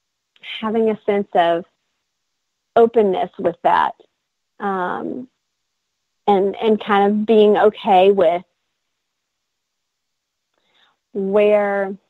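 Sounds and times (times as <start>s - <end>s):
faint short breath: 10.6s - 11.0s.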